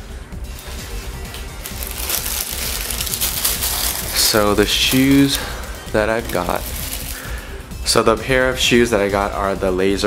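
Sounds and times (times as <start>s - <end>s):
background music: 0.0s - 10.0s
tissue paper crinkling: 0.6s - 7.4s.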